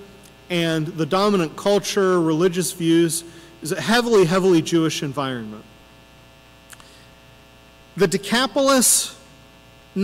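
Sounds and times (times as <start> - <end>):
electrical mains hum: 0.0 - 10.0
faint click: 6.7 - 6.9.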